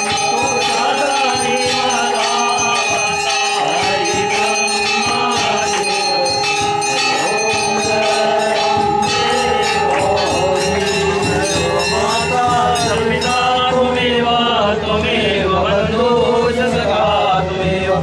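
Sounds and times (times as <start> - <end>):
temple bells ringing rapidly: 0.0 - 14.7
voices singing: 0.0 - 18.0.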